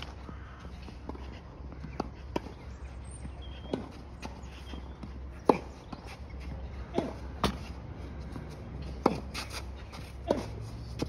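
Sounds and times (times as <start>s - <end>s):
ball bouncing on clay court: 0.0s - 11.0s.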